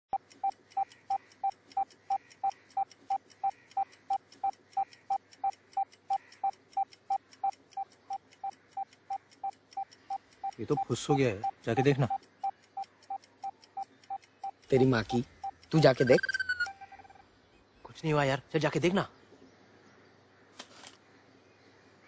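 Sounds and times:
short electronic timer beeps: 0.1 - 17.2.

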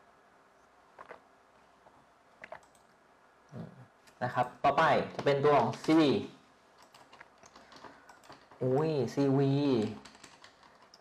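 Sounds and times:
faint keyboard keystrokes: 6.8 - 8.8, 9.7 - 11.0.

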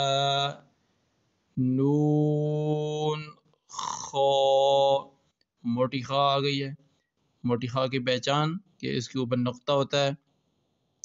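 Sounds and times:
man chanting letters: 0.0 - 0.6, 1.6 - 5.0, 5.7 - 6.8, 7.5 - 10.2.

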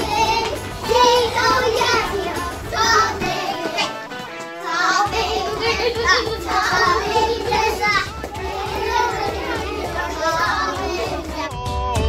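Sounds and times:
young children singing along: 0.0 - 11.6
children's song with bass backing: 0.0 - 12.0.

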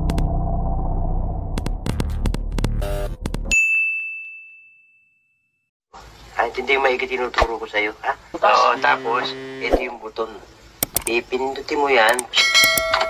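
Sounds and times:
bright ringing ding: 3.5 - 5.3, 12.4 - 13.0
sharp crackling clicks: 10.8 - 11.2, 12.0 - 13.0.

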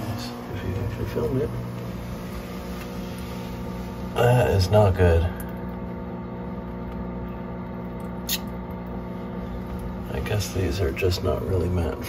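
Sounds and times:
low pitched hum: 0.0 - 12.0.

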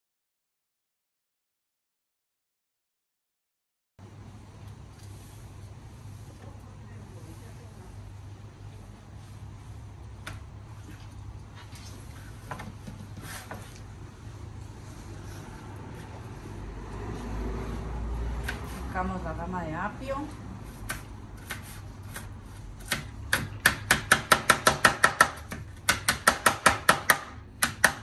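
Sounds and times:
knife cutting celery on board: 18.4 - 18.9, 20.6 - 26.4.

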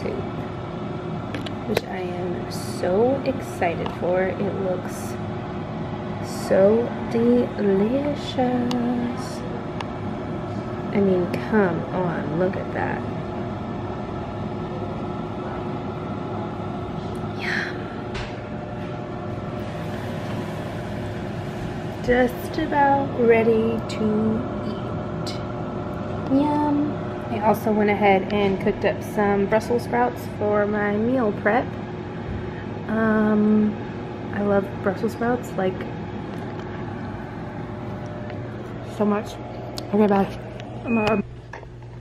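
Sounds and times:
woman speaking: 0.0 - 0.3, 1.7 - 5.2, 6.2 - 9.5, 10.9 - 13.1, 22.0 - 25.4, 26.2 - 31.7, 32.8 - 35.9, 38.8 - 41.2
steady low hum: 0.0 - 42.0.

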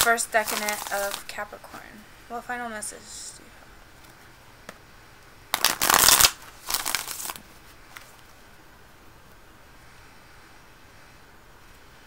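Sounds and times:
cards being shuffled: 0.0 - 1.3, 5.6 - 8.2.

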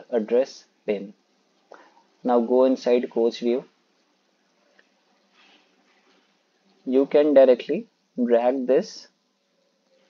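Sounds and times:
man speaking: 0.0 - 1.2, 2.2 - 3.8, 6.8 - 9.2.

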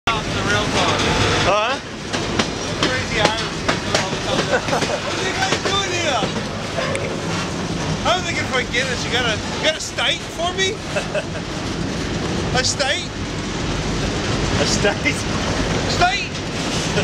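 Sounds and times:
indistinct voices: 0.1 - 11.6
train running on track: 0.1 - 17.0.

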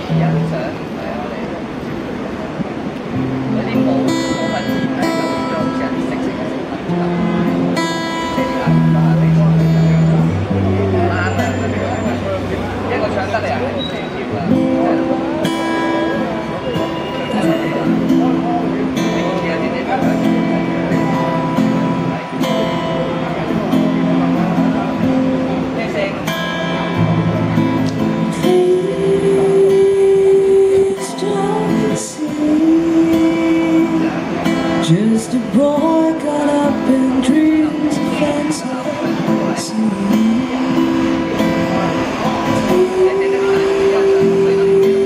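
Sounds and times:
amplified guitar playing: 0.0 - 1.8, 2.6 - 45.0
woman singing into a microphone: 28.3 - 41.1, 42.5 - 45.0.

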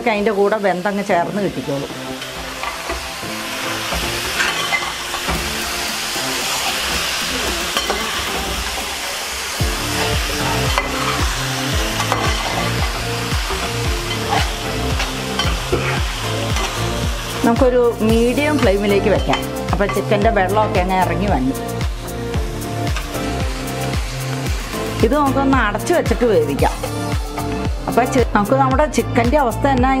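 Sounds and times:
food sizzling in a metal pot: 0.0 - 29.5
background music: 0.0 - 30.0
metal spatula scraping a pot: 4.0 - 5.5, 12.0 - 16.8
steady beat: 9.6 - 30.0.

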